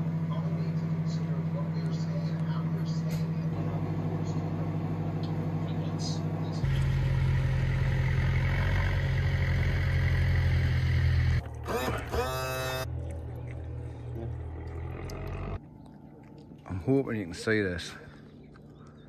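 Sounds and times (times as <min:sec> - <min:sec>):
microwave oven hum: 0:00.0 - 0:15.6.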